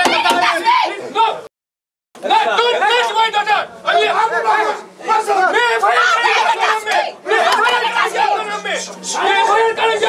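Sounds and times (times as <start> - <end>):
crowd talking: 0.0 - 1.5, 2.2 - 10.0.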